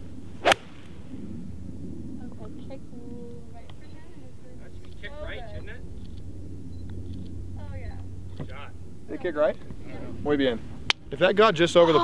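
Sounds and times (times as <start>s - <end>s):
low outdoor rumble: 0.0s - 12.0s
golf club striking ball: 0.4s - 1.0s.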